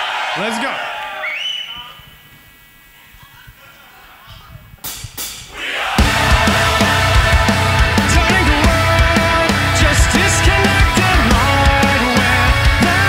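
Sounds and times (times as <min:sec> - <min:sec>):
crowd shouting and cheering: 0:00.0 - 0:02.0, 0:05.4 - 0:13.0
heavy rock band playing: 0:05.9 - 0:13.0.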